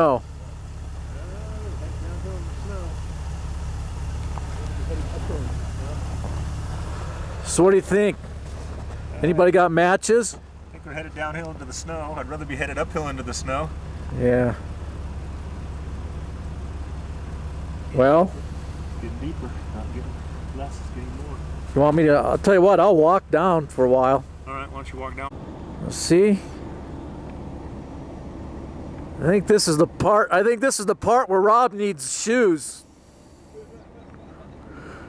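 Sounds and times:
vehicle engine rumbling: 0.0 - 35.0
faint voices: 4.3 - 8.2.

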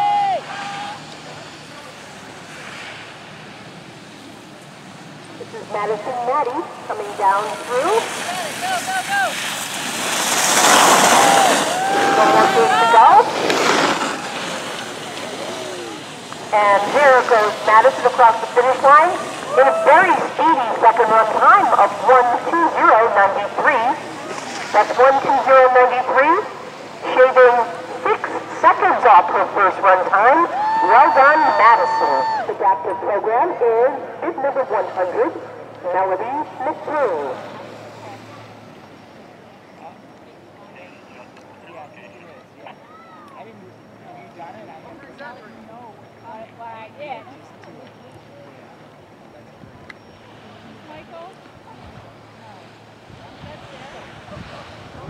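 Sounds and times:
rush of noise: 0.0 - 39.2.

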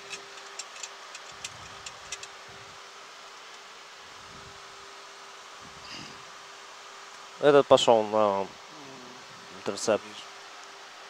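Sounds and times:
constant hum: 0.0 - 11.0.

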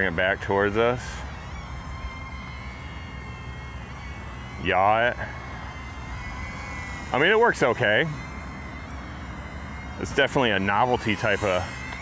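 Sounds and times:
low steady rumble: 0.0 - 12.0
toy drone motors whining: 0.0 - 12.0.

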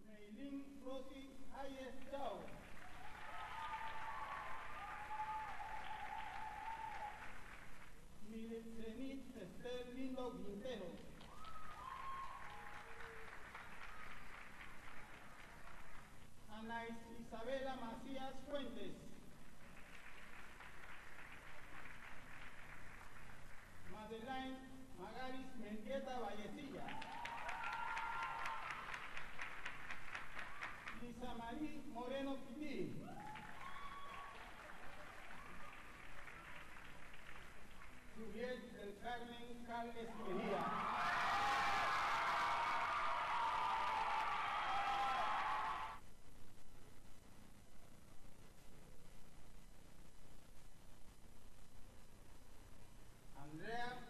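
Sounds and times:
audience applauding: 2.3 - 8.0, 11.2 - 16.3, 19.5 - 24.0, 26.7 - 31.2, 33.1 - 38.2, 40.4 - 46.0.

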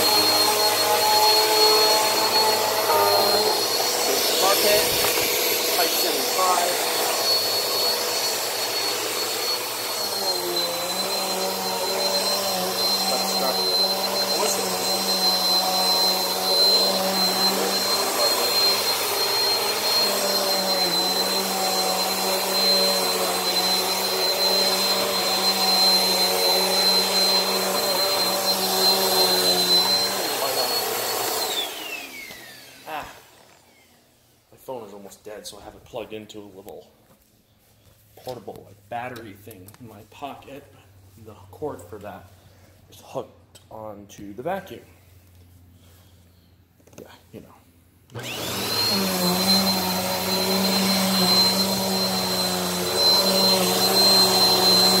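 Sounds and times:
vacuum cleaner motor whine: 0.0 - 34.7, 48.1 - 55.0.

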